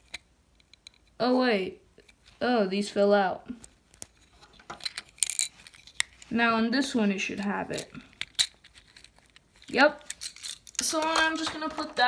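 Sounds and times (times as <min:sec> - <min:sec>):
plastic bricks clicking and clattering: 0:04.6 - 0:06.1, 0:07.7 - 0:12.0.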